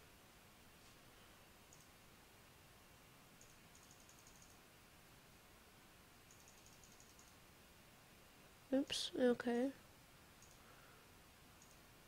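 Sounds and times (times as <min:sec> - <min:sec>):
computer mouse clicks: 0:01.7 - 0:01.9, 0:03.4 - 0:04.6, 0:06.3 - 0:07.4, 0:10.4 - 0:10.7, 0:11.6 - 0:11.8.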